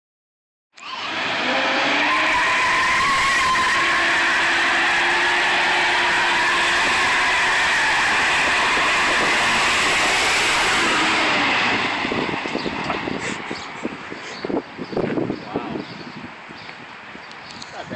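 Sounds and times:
car engine at high revs: 0.8s - 15.8s.

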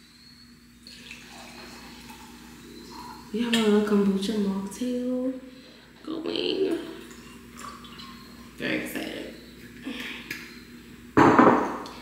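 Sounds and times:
glass bottle knocking on stone: 11.2s - 11.8s.

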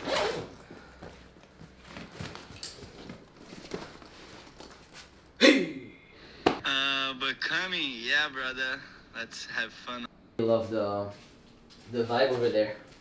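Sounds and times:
bag and gear rustling: 0.0s - 5.3s
person speaking: 6.6s - 10.8s.

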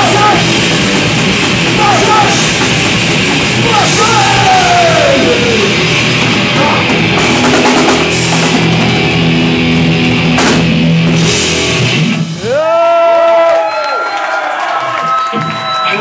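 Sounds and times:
thrash metal band playing live: 0.0s - 12.8s.

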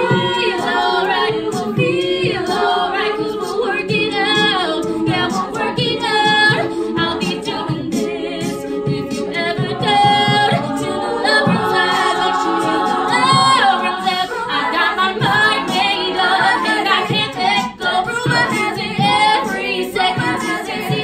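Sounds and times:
women singing a cappella: 0.0s - 21.0s.

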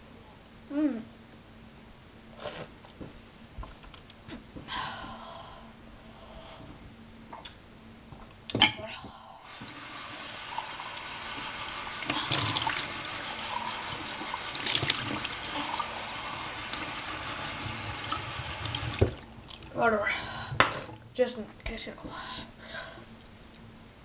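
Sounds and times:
water running: 9.4s - 20.0s.

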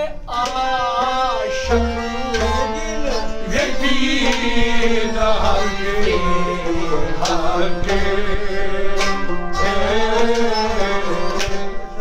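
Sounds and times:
men singing folk melody: 0.0s - 12.0s.

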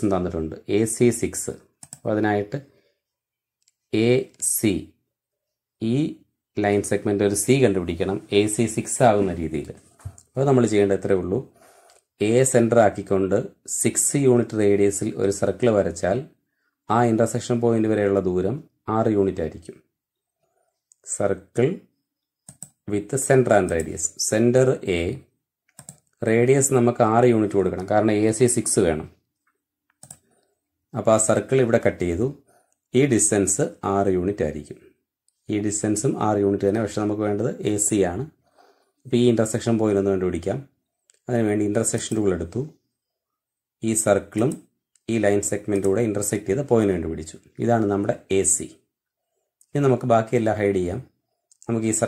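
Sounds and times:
man speaking: 0.0s - 2.9s, 3.7s - 5.0s, 5.8s - 11.6s, 12.2s - 19.9s, 21.0s - 25.4s, 26.1s - 29.3s, 30.9s - 38.4s, 39.0s - 42.9s, 43.8s - 48.9s, 49.6s - 52.0s
computer mouse click: 1.8s - 2.1s, 22.3s - 22.8s, 25.7s - 26.2s, 29.4s - 30.5s, 42.0s - 42.3s, 45.7s - 46.0s.

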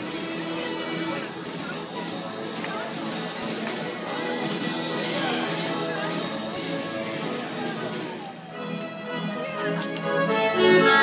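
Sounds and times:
band organ music: 0.0s - 11.0s
people talking: 0.0s - 11.0s.

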